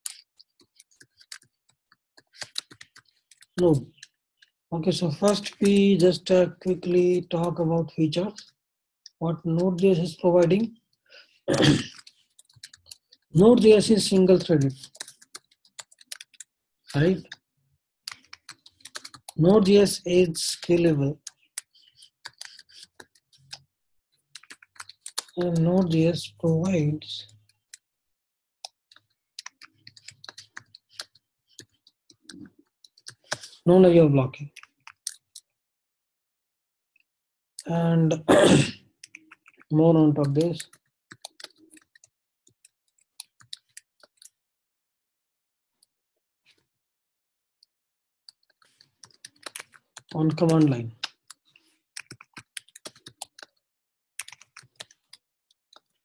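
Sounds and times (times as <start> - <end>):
typing on computer keyboard: 2.2 - 4.1, 13.7 - 17.0, 18.1 - 19.4, 28.9 - 33.5, 48.6 - 50.8, 52.0 - 53.6, 54.2 - 55.2.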